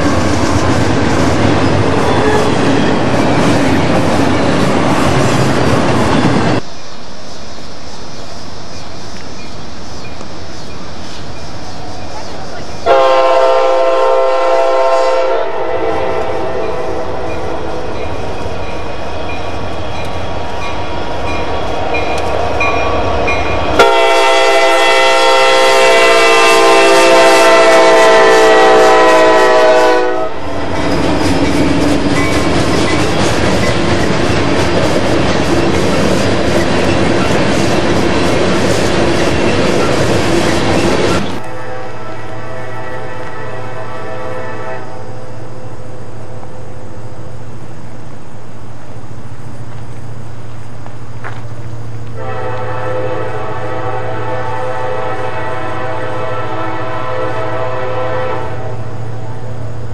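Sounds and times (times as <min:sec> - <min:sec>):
train rumble: 0:00.0 - 0:59.9
locomotive air horn: 0:12.8 - 0:17.9, 0:23.8 - 0:30.5, 0:41.4 - 0:45.2, 0:52.2 - 0:58.9.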